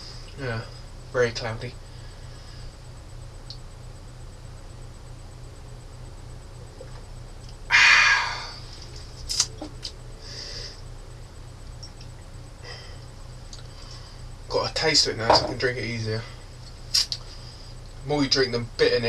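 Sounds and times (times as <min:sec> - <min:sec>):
steady low hum: 0:00.0 - 0:19.0
man sighing loudly: 0:07.7 - 0:08.6.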